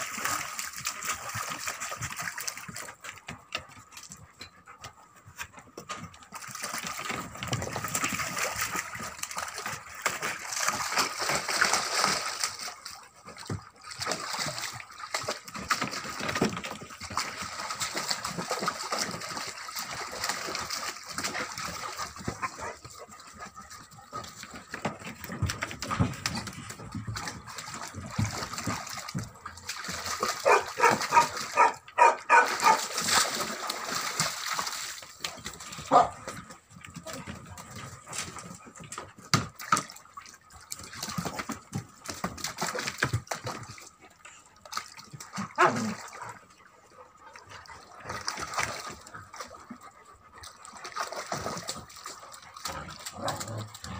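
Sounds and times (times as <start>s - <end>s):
puppies splashing in water: 0.0s - 53.9s.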